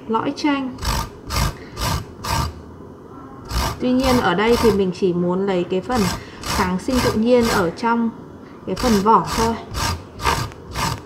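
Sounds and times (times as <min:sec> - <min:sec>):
lime peel rasping on grater: 0:00.8 - 0:02.6, 0:03.4 - 0:04.8, 0:05.9 - 0:07.8, 0:08.7 - 0:11.0.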